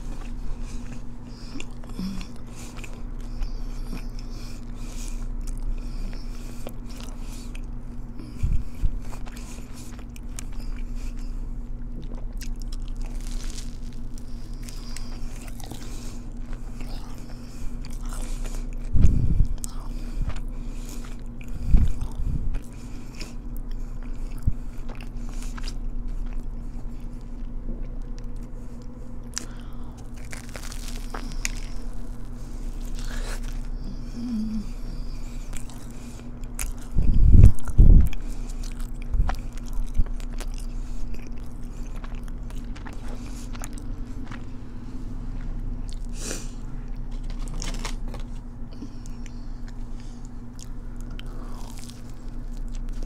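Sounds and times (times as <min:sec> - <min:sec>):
chewing and crunching crispy food: 0:00.0 - 0:53.0
low steady hum: 0:00.0 - 0:53.0
dull low thumps: 0:18.9 - 0:19.6, 0:36.9 - 0:38.2.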